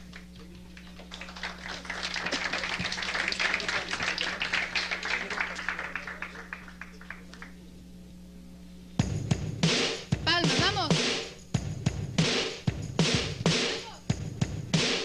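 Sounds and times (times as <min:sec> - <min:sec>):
audience applauding: 0:00.0 - 0:07.6
low electrical hum: 0:00.0 - 0:15.0.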